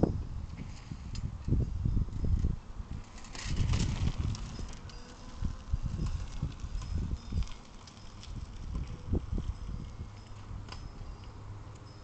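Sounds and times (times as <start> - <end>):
tricycle rolling on pavement: 0.6 - 12.0.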